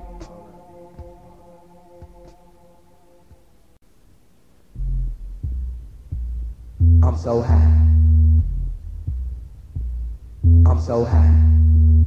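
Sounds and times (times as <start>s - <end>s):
deep bass notes: 0.0s - 2.4s, 4.7s - 12.0s.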